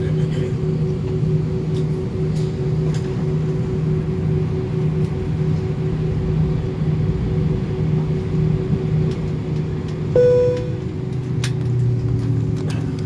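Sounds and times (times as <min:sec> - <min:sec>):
airliner cabin hum: 0:00.0 - 0:13.0.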